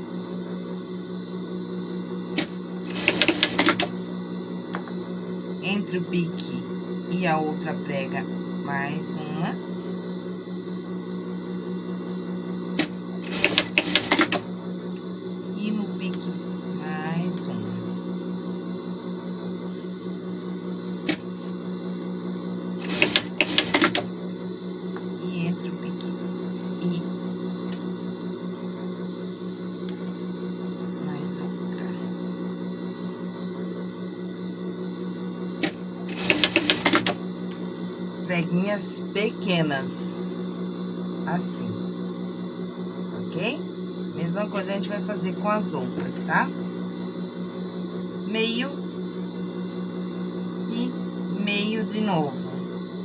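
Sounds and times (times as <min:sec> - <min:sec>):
steady low hum: 0:00.0 - 0:53.0
sewing machine stitching: 0:02.4 - 0:03.9, 0:12.8 - 0:14.5, 0:22.8 - 0:24.1, 0:35.6 - 0:37.2.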